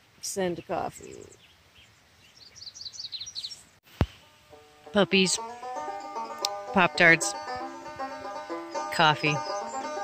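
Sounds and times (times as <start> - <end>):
small bird chirping: 0.3 - 4.3, 9.2 - 10.0
banjo music: 4.2 - 10.0.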